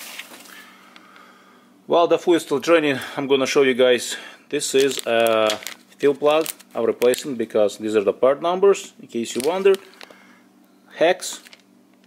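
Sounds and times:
plastic bag rustling: 4.6 - 8.1, 9.2 - 10.2, 11.3 - 11.6.

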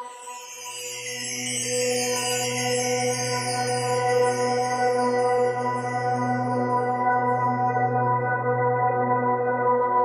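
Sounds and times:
ambient meditation music: 0.0 - 10.0.

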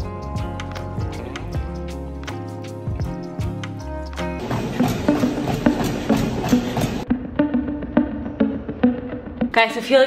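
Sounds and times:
footfalls on treadmill belt: 4.4 - 7.0
treadmill motor hum: 4.4 - 7.1.

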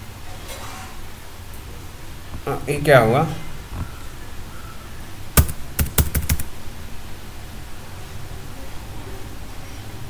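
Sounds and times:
keyboard key clicks: 5.4 - 6.5.

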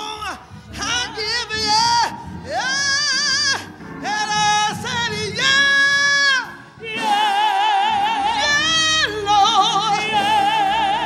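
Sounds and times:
woman singing gospel: 0.0 - 11.0.

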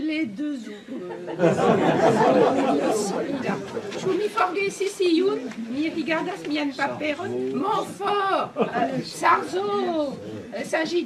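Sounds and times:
audience laughing and chattering: 0.6 - 11.0.

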